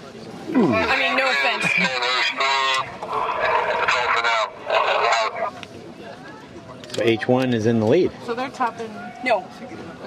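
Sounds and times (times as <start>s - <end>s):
group laughing: 0.6s - 5.3s.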